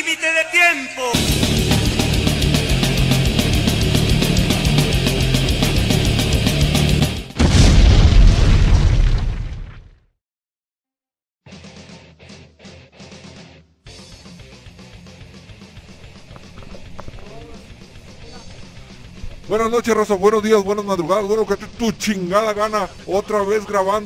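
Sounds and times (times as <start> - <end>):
heavy metal music: 0.8 - 7.6, 11.5 - 24.0
deep boom: 7.2 - 10.0.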